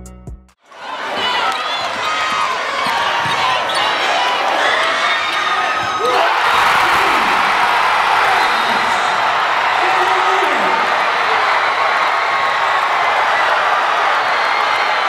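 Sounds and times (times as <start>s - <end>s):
crowd shouting and roaring: 0.6s - 15.0s
basketball bouncing: 2.8s - 3.8s.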